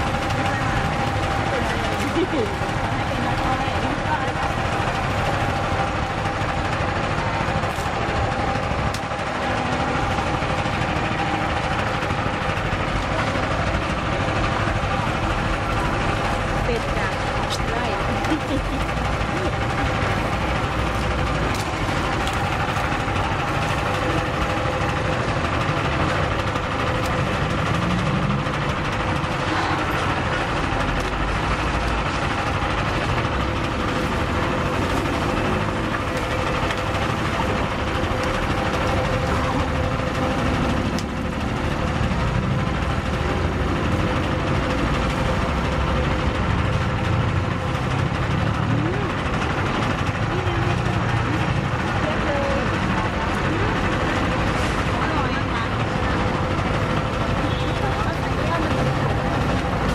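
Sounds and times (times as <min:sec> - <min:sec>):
rollers crushing cane stalks: 0:00.0 - 0:59.9.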